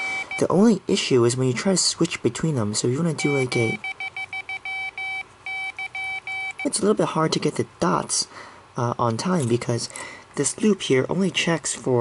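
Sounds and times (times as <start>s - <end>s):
buzzer beeping morse code: 0.0s - 0.5s, 3.2s - 6.8s.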